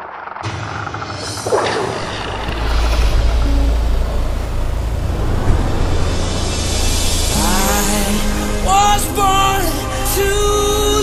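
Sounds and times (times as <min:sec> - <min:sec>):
car engine low rumble: 0:02.1 - 0:11.0.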